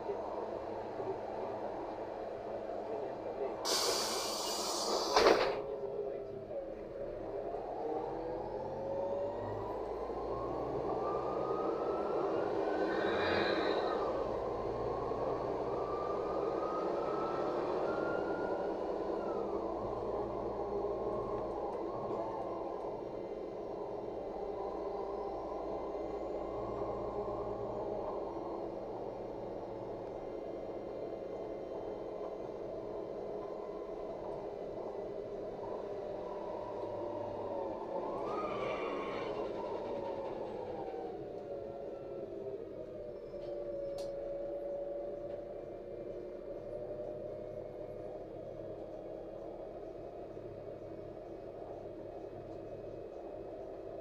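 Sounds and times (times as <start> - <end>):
bus drivetrain whine: 0.0 - 54.0
bus engine hum: 0.0 - 54.0
road noise: 0.0 - 54.0.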